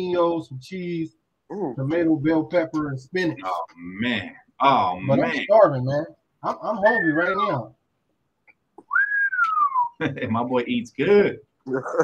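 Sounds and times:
person whistling: 8.8s - 10.0s.

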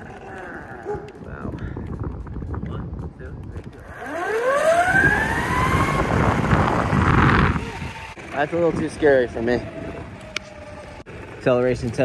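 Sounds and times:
tyres rolling on asphalt: 0.0s - 12.0s
electric motor whine: 3.8s - 11.1s.

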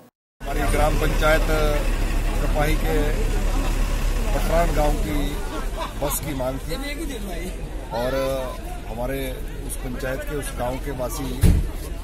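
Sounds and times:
bus engine idling: 0.4s - 12.0s
man speaking: 4.3s - 11.4s.

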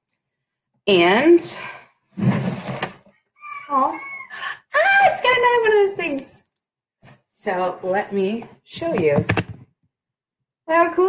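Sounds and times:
woman excited vocalising: 3.4s - 5.2s
woman squealing: 3.4s - 5.2s.

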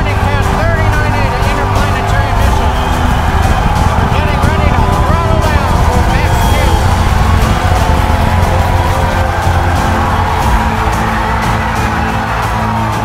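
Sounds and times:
music: 0.0s - 13.0s
spectators cheering and shouting: 0.0s - 13.0s.

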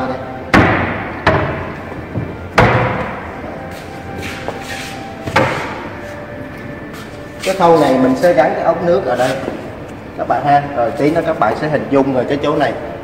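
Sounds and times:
wooden cabinet doors knocking: 0.5s - 3.2s.

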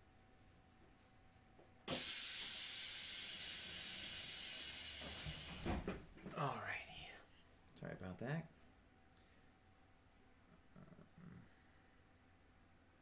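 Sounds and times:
steady hiss: 1.9s - 7.4s.

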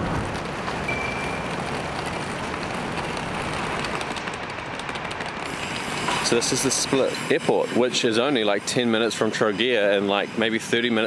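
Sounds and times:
car tyre and engine noise: 0.0s - 11.0s.

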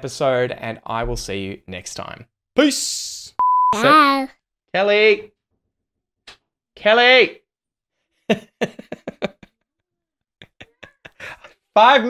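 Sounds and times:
man laughing: 8.3s - 9.5s, 10.4s - 11.5s.

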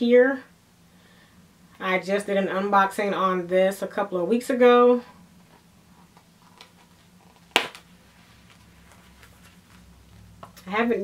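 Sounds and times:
leather handling rustle: 5.4s - 10.3s.

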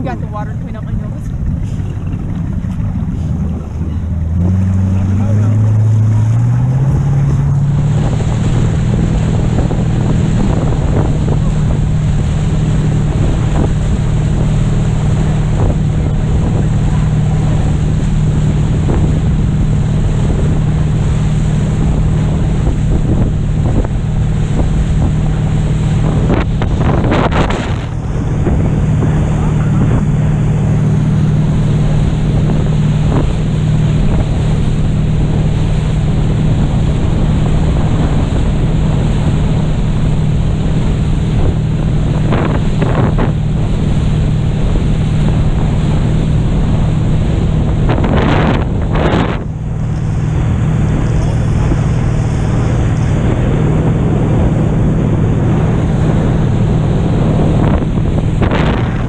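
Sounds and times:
motorboat engine drone: 0.0s - 59.0s
water rushing past boat: 0.0s - 59.0s
wind buffeting microphone: 0.0s - 59.0s.

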